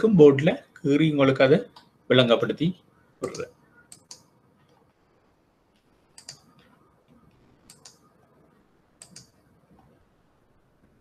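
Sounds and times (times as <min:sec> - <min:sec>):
computer mouse clicks: 0:03.2 - 0:04.8, 0:05.7 - 0:08.2, 0:09.0 - 0:09.5.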